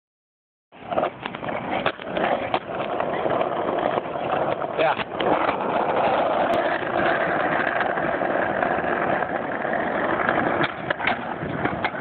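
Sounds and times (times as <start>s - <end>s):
skateboard wheels rolling on pavement: 0.7s - 12.0s
skateboard clacks: 0.8s - 12.0s.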